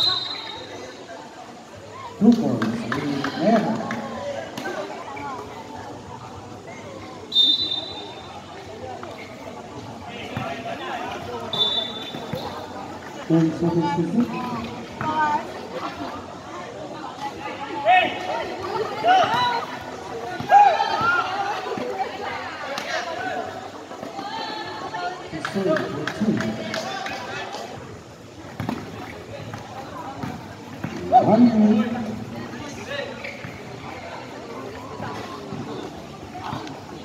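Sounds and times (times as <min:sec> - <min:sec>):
referee whistle blasts: 0:00.0 - 0:00.8, 0:07.3 - 0:08.3, 0:11.5 - 0:12.6
players and spectators calling out: 0:00.0 - 0:37.0.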